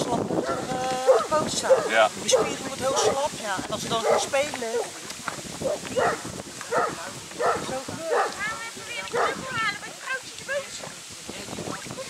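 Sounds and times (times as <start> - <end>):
dog barking: 0.5 - 3.3, 4.0 - 4.9, 5.6 - 8.4, 9.1 - 9.5.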